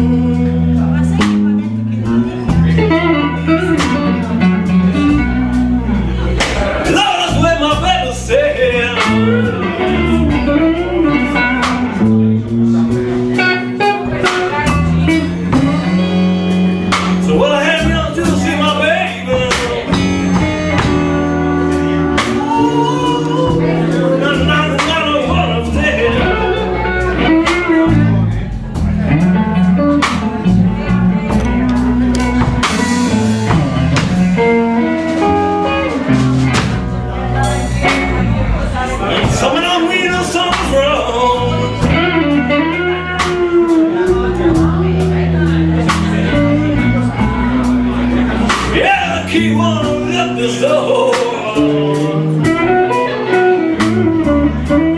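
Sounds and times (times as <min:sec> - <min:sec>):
blues band playing: 0:00.0 - 0:54.9
drum kit: 0:00.0 - 0:54.9
electric bass: 0:00.0 - 0:54.9
electric guitar lead lines bending: 0:00.0 - 0:54.9.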